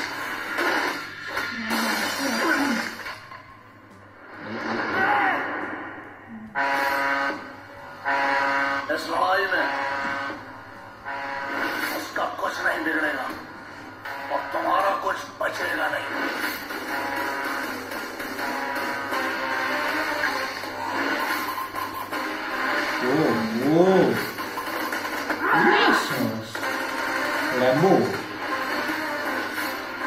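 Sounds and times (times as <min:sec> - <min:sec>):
trailer music: 0:00.0 - 0:30.0
horn-like trailer chord: 0:06.1 - 0:13.0, 0:13.6 - 0:15.0, 0:16.1 - 0:21.3.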